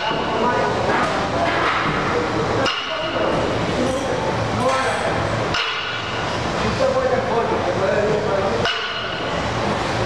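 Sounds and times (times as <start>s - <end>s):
gym background noise: 0.0s - 10.0s.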